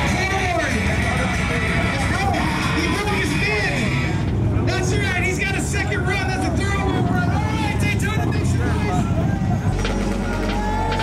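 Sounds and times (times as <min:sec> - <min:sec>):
motorcycle engine running: 0:06.1 - 0:11.0.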